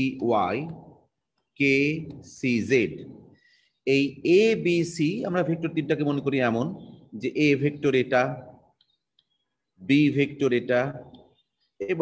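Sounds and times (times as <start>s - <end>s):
man lecturing: 0.0s - 8.7s, 9.6s - 12.0s.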